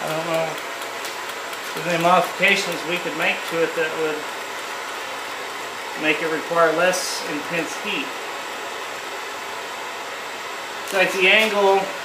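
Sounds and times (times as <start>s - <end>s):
blowtorch flame hissing: 0.0s - 12.0s.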